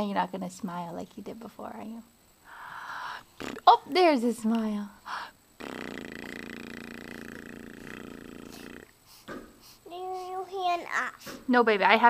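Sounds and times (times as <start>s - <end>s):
baby making low vocal sound: 6.0s - 8.9s.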